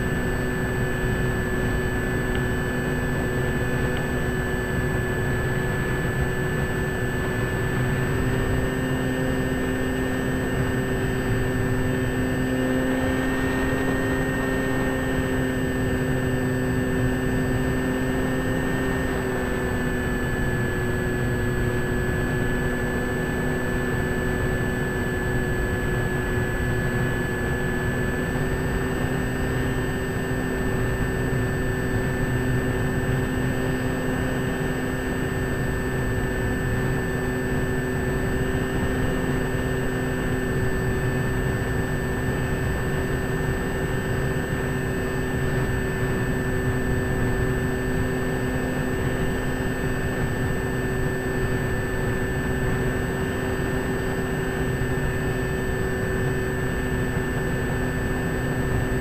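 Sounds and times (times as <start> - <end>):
model airplane engines droning: 0.0 - 59.0.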